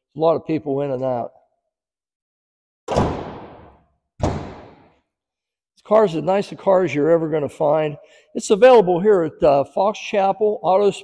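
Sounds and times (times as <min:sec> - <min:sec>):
car hood thudding shut: 0:02.9 - 0:04.8.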